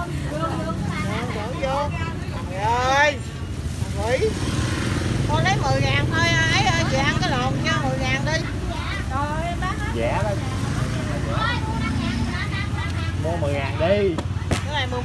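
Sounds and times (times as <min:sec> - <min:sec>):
woman talking: 0:05.2 - 0:13.2.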